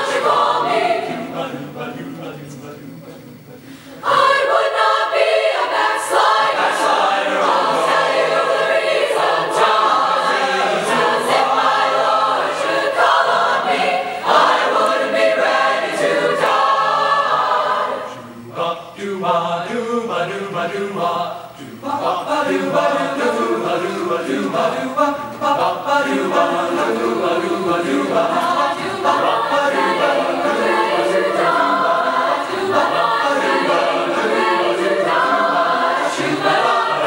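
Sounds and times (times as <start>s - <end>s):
mixed choir singing in harmony: 0.0s - 2.8s, 4.0s - 37.0s.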